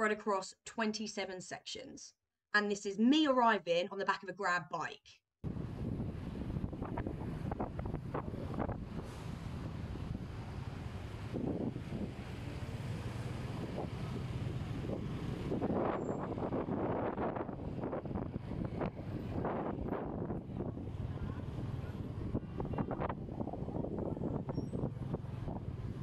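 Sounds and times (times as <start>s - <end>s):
engines and city traffic rumble: 5.4s - 26.0s
wind rushing over microphone: 5.4s - 26.0s.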